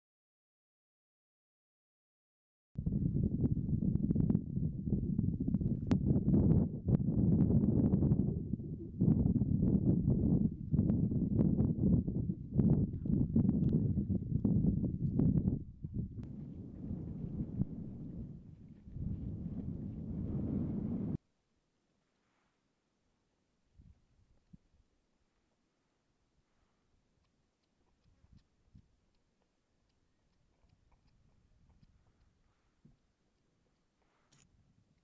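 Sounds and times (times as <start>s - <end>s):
wind buffeting microphone: 2.8s - 21.2s.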